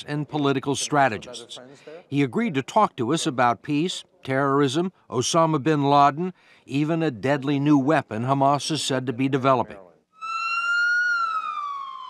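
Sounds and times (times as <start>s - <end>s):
emergency siren wailing: 10.2s - 12.0s.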